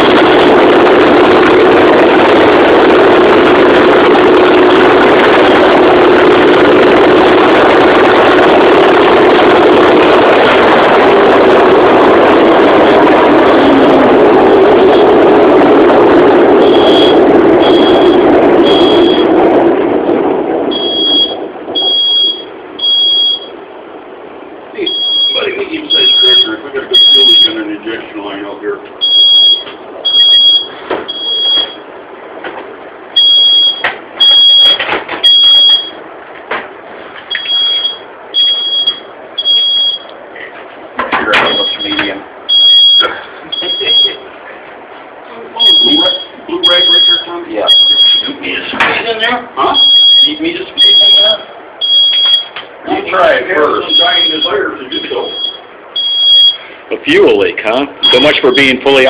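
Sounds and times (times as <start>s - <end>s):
diesel engine running loudly: 0.0s - 59.0s
smoke alarm beeping: 16.5s - 19.4s, 20.7s - 23.6s, 24.8s - 27.6s, 29.0s - 31.9s, 33.2s - 36.0s, 37.3s - 40.2s, 41.3s - 44.3s, 45.6s - 48.4s, 49.7s - 52.6s, 53.6s - 56.8s, 58.0s - 59.0s.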